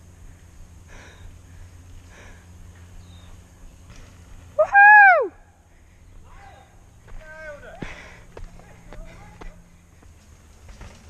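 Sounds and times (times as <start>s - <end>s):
bike tyres rolling on dirt: 0.0s - 11.0s
person whooping: 4.6s - 5.4s.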